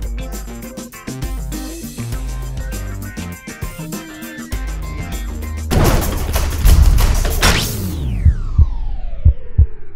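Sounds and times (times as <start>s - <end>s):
low thumps: 5.7s - 9.9s.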